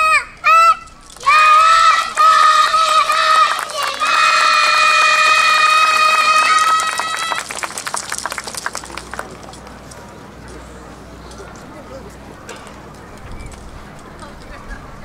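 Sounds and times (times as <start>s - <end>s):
girls chanting through loudspeakers: 1.2s - 5.5s.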